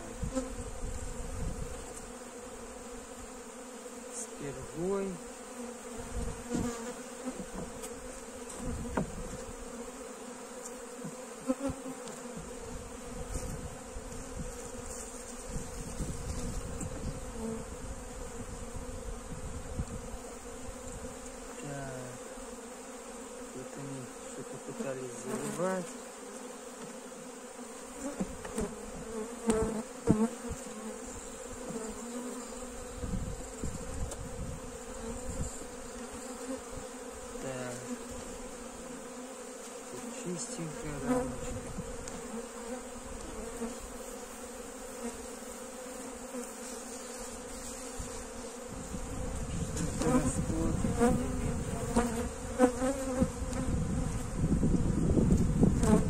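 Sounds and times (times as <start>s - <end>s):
bees buzzing: 0.0s - 56.0s
wooden hive frame knocks: 6.3s - 9.5s.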